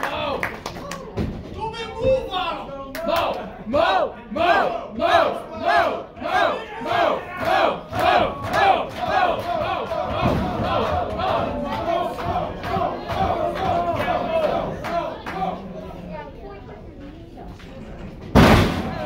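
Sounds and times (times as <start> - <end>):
crowd cheering: 0.0 - 1.4, 2.3 - 15.8
crowd chanting: 3.0 - 16.1.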